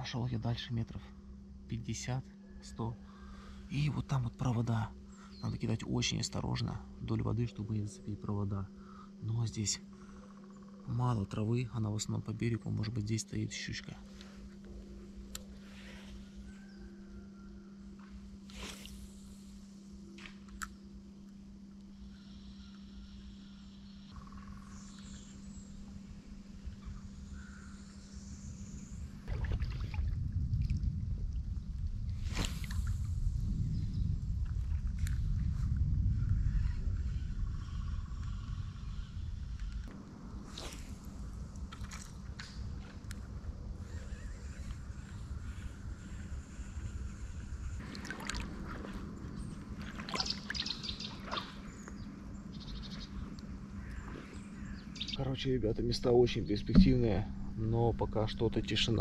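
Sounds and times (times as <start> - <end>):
steady low hum: 0.0 - 59.0
river water sloshing: 29.2 - 30.2, 47.8 - 51.9
water splashes: 29.2 - 30.8, 47.8 - 49.0, 49.8 - 51.7
loud low rumble: 56.5 - 59.0.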